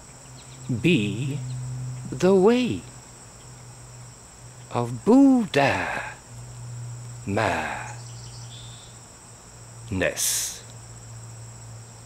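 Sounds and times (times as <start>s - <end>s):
crickets chirring: 0.0s - 12.0s
man speaking: 0.7s - 1.5s, 2.1s - 2.9s, 4.7s - 6.2s, 7.2s - 8.0s, 9.9s - 10.7s.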